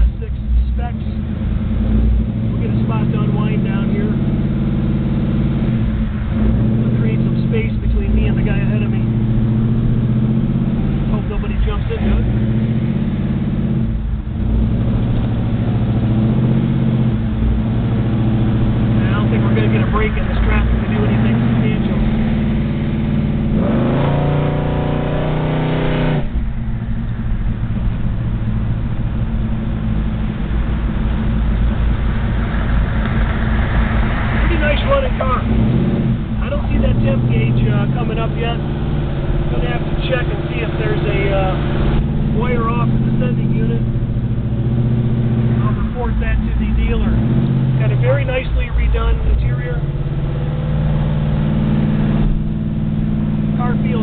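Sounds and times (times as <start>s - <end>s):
car engine running: 0.0s - 54.0s.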